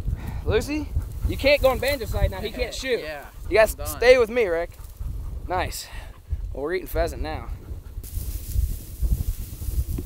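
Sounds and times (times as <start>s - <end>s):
wind buffeting microphone: 0.0s - 10.0s
grass rustling: 1.0s - 5.8s, 7.9s - 10.0s.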